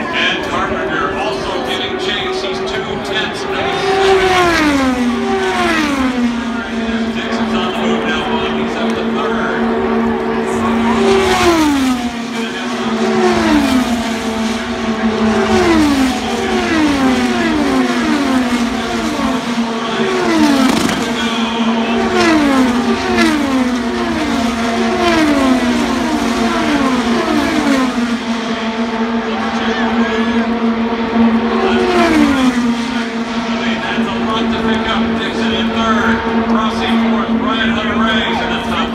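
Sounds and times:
race cars passing at speed: 0.0 - 38.9.

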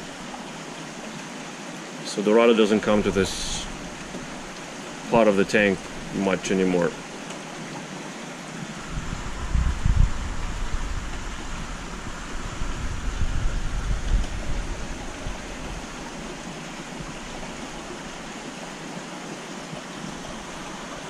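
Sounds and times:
aquarium water rushing: 0.0 - 21.0
deep uneven rumble: 2.8 - 6.9, 8.7 - 18.4.

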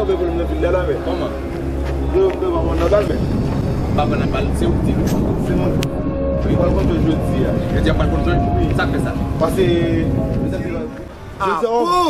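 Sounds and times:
steady low rumble: 0.0 - 11.5
indistinct voices: 0.0 - 12.0.

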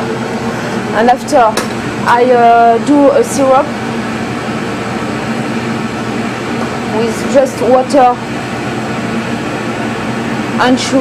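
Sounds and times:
extractor fan hum: 0.0 - 11.0.

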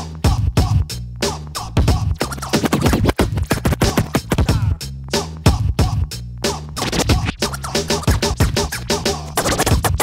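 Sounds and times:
hip hop drums: 0.0 - 10.0
stepping bass line: 0.3 - 10.0
turntable scratching: 1.8 - 4.8, 6.7 - 10.0.

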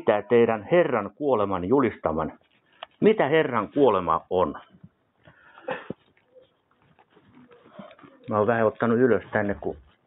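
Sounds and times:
faint bird cooing: 6.2 - 8.4.

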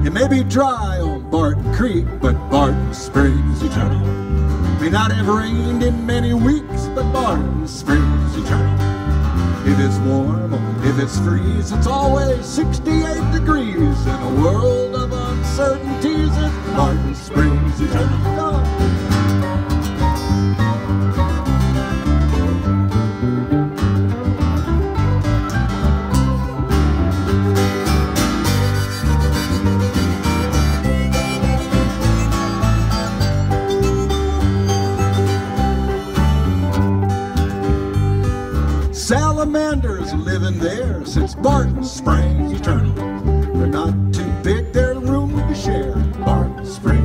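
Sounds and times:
acoustic country band: 0.0 - 47.0
guitar: 0.0 - 47.0
low bass line: 0.0 - 47.0.

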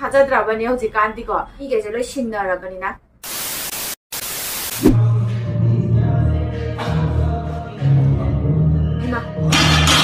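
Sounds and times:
tv static hiss: 3.2 - 5.0.

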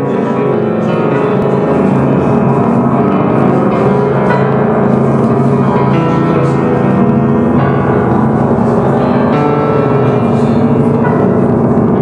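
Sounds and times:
slow piano chords: 0.0 - 12.0.

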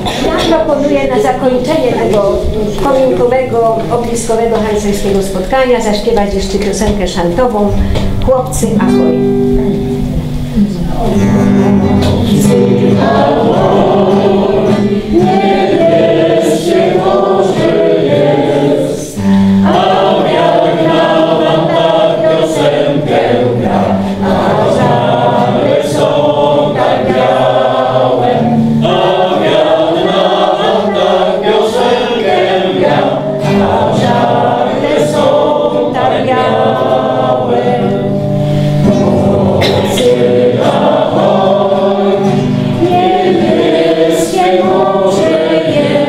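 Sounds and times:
people singing in chorus: 0.0 - 4.7, 11.1 - 46.0
acoustic guitar: 0.0 - 46.0.

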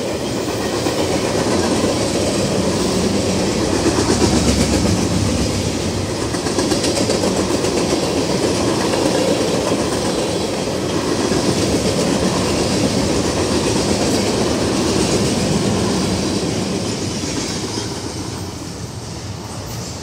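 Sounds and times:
freight train passing: 0.0 - 20.0
steel wheels rattling on rails: 0.0 - 20.0.

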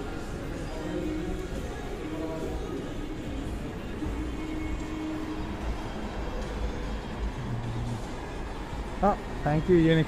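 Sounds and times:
city traffic rumble: 0.0 - 10.0
faint background music: 0.0 - 10.0.

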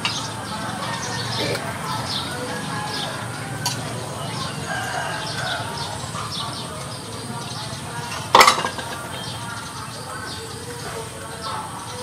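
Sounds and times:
rooster crowing: 0.7 - 6.1.

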